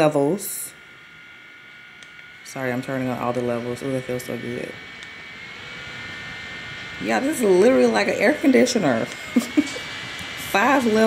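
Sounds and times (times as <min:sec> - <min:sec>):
handheld fan whirring: 0:00.0 - 0:11.0
high motor whine: 0:00.0 - 0:11.0.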